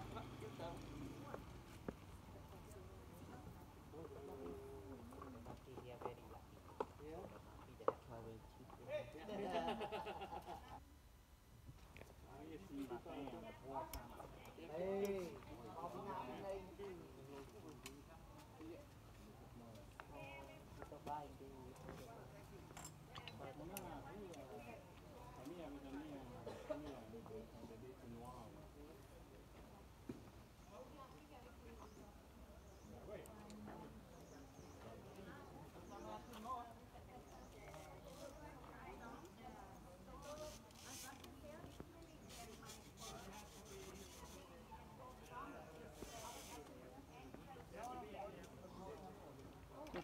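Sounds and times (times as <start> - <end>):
distant people talking: 0.0 - 10.8, 12.3 - 50.0.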